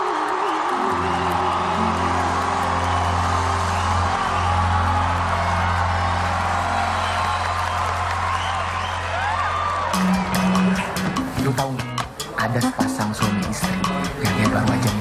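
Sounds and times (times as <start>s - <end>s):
crowd cheering and applauding: 0.0s - 12.3s.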